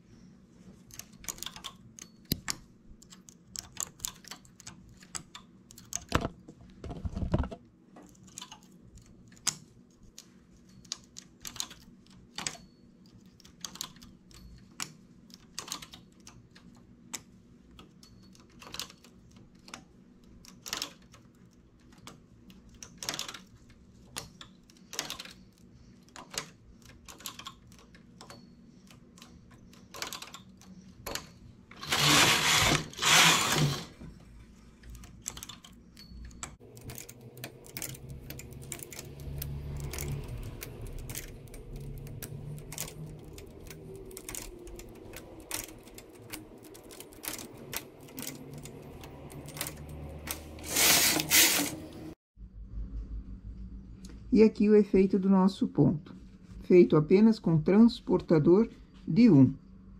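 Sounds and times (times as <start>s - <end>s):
knitting carriage sliding rattle: 31.1s - 34.0s, 36.6s - 52.2s.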